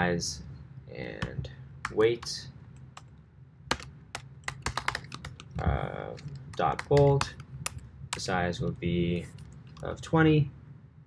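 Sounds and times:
typing on computer keyboard: 3.7s - 8.3s.

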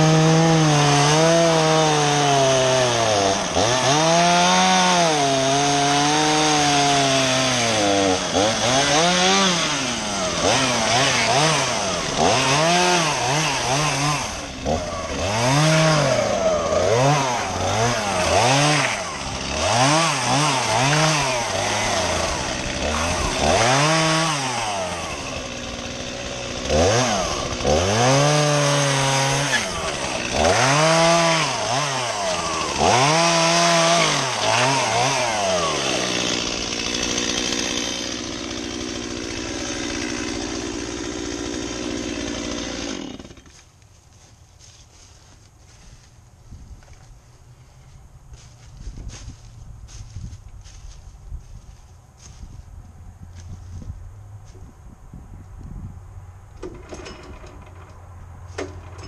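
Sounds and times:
chainsaw idling: 0.0s - 43.6s, 56.6s - 58.0s
chainsaw revving cutting log: 0.0s - 43.6s.

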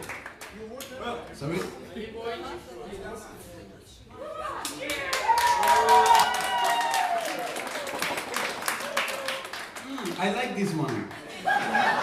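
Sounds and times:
audience clapping and shouting: 0.0s - 0.9s, 4.6s - 11.3s.

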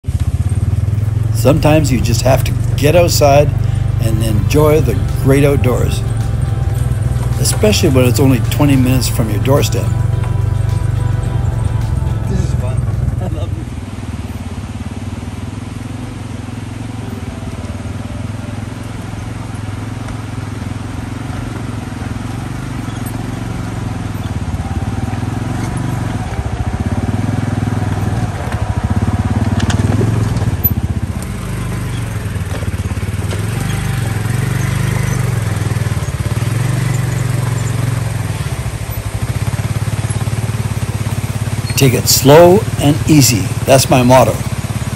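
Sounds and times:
utility vehicle engine running: 0.0s - 44.9s.

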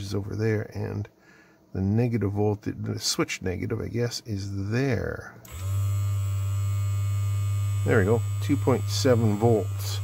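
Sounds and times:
vibration motor buzzing: 5.5s - 10.0s.

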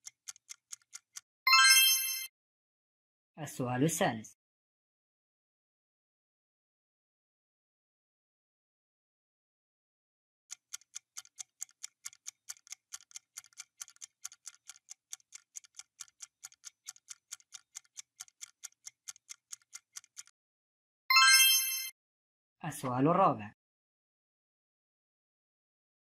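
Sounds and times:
clock ticking: 0.0s - 1.8s, 10.5s - 20.3s.

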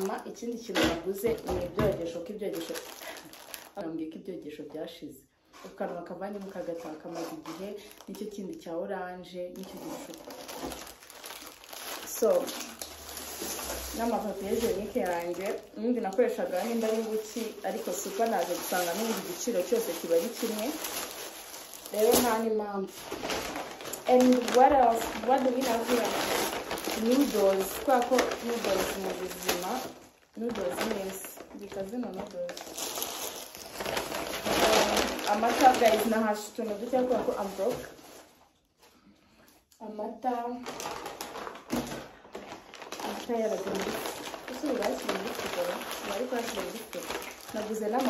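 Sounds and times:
plastic packets crinkling: 0.0s - 3.8s, 6.2s - 8.8s, 9.4s - 38.8s, 40.6s - 48.0s
woman talking: 0.0s - 10.5s, 12.0s - 12.8s, 13.5s - 20.9s, 21.9s - 23.0s, 24.0s - 32.7s, 34.4s - 38.0s, 39.8s - 40.7s, 43.0s - 48.0s
paper bag rustling: 2.6s - 3.7s, 9.6s - 38.5s, 40.6s - 48.0s.

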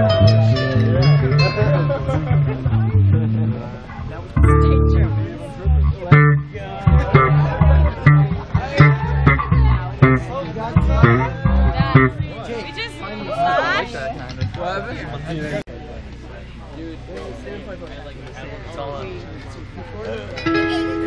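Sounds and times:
electric guitar: 0.0s - 12.3s, 20.4s - 21.0s
electric bass: 0.0s - 12.5s.

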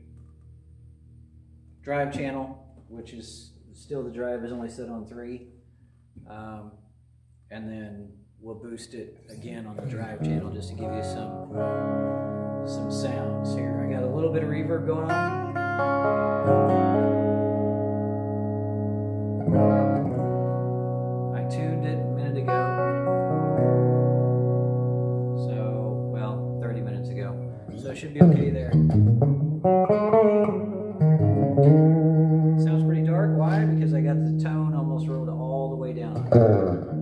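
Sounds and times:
electric guitar chords and notes: 9.8s - 37.0s.

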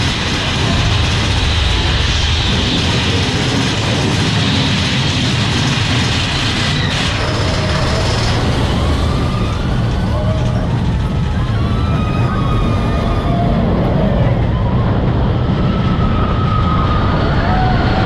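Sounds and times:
roller coaster rumbling on rails: 0.0s - 18.0s.

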